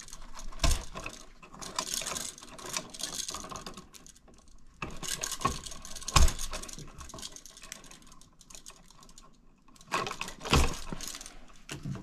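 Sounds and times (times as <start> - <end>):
small clicks and rustles of wiring: 0.0 - 12.0.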